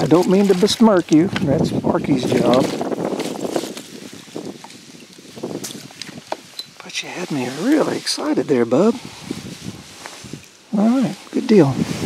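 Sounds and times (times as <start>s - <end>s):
soft rustles: 0.0s - 12.0s.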